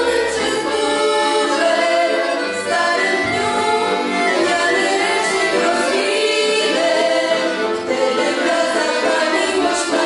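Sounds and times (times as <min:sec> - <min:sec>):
accordion duet: 0:00.0 - 0:10.0
children singing together: 0:00.0 - 0:10.0.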